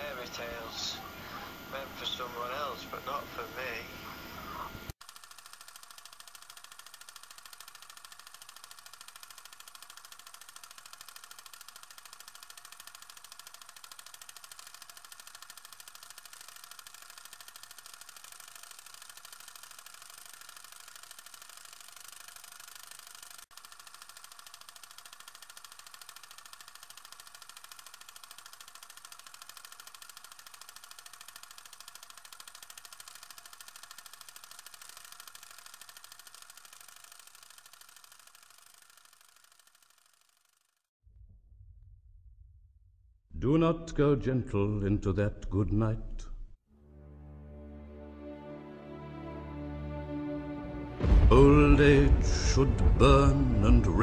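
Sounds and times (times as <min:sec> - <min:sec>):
film projector clatter: 0:00.0 - 0:40.9.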